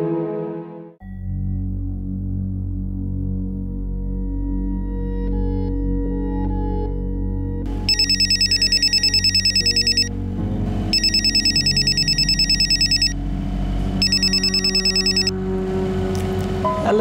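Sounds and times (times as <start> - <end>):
telephone ringing electronic trill: 7.8 - 10.1, 10.9 - 13.2, 14.0 - 15.3.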